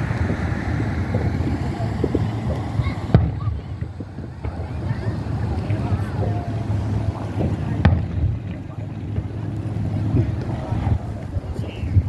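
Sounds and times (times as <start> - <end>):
firework bang: 0.0 - 6.3, 7.3 - 11.0
wind rumbling on microphone: 0.0 - 12.0.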